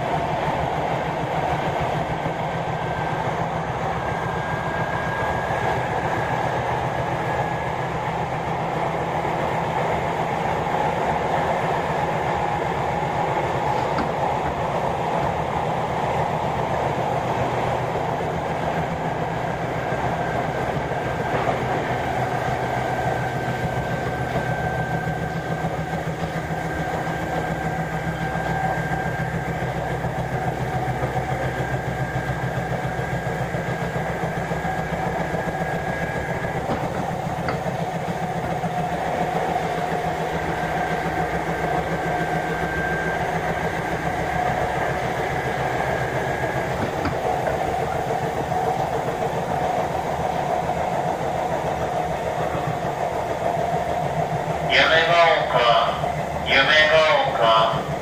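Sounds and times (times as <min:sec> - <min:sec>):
electric train interior hum and whine: 0:00.0 - 0:58.0.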